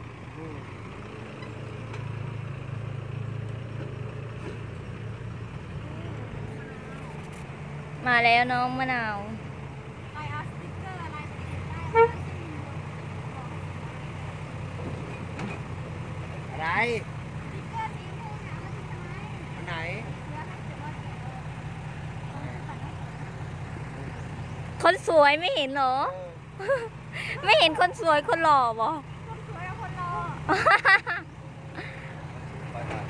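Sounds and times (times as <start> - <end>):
diesel truck engine running: 0.0 - 33.0.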